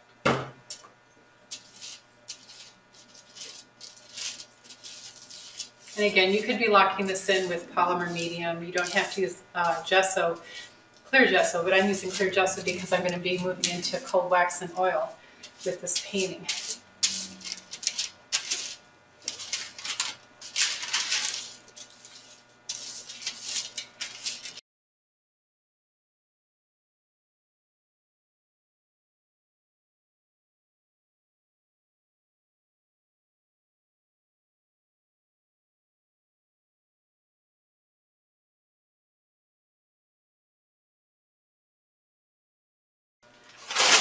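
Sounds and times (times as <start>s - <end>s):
plastic bottle knocking on table: 0.2s - 0.6s
palette knife scraping and crinkling: 1.4s - 24.6s, 43.4s - 44.0s.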